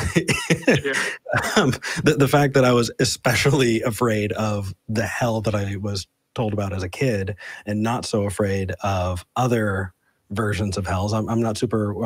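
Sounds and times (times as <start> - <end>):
person coughing: 0.0 - 2.0
person laughing: 0.0 - 2.2.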